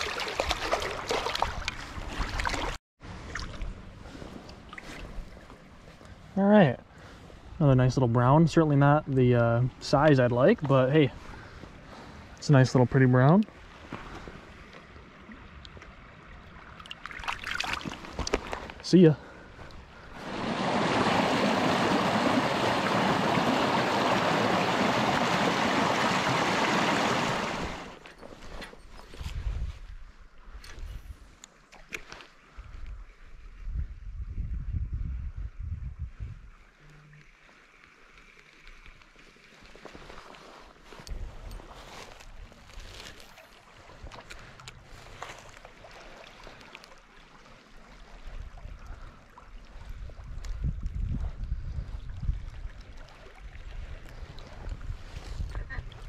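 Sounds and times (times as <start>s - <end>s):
stream water rushing: 13.6s - 19.1s, 19.7s - 28.0s.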